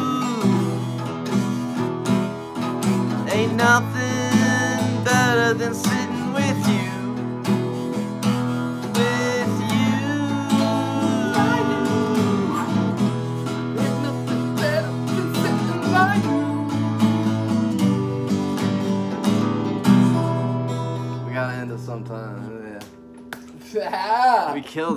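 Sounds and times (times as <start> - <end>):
acoustic guitars playing blues: 0.0 - 24.9.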